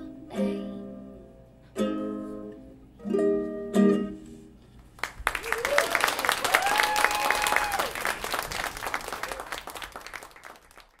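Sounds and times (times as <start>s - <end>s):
audience clapping: 4.9s - 11.0s
person cheering whoop: 5.4s - 8.1s.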